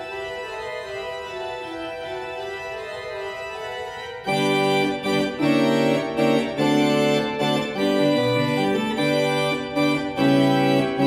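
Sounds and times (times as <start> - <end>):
pipe organ sustained chords: 0.0 - 11.0.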